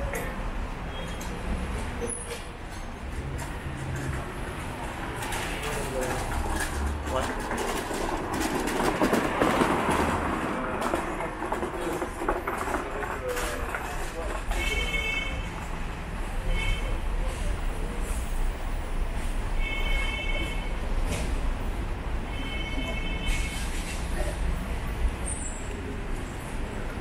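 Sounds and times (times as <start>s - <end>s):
traffic passing: 0.0s - 27.0s
voices of passers-by: 0.0s - 27.0s.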